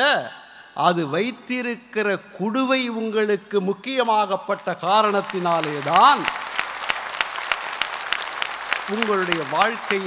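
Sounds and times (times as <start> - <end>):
audience applauding: 5.0 - 10.0.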